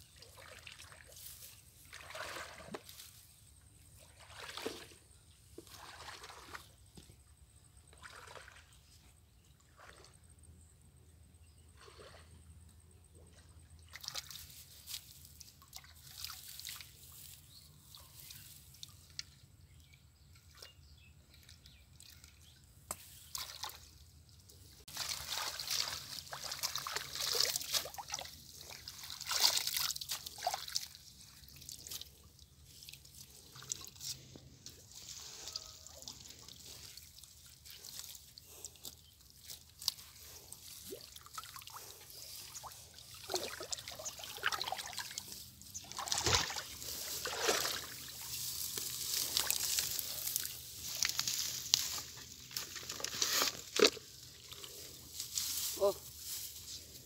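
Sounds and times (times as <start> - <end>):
water sloshing and trickling: 0.0 - 10.6, 11.6 - 57.0
water dripping through net mesh: 24.9 - 34.8.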